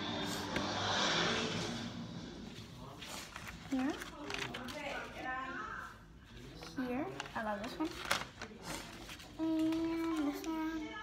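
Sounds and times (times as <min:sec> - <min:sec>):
paper crackling: 0:03.0 - 0:10.9.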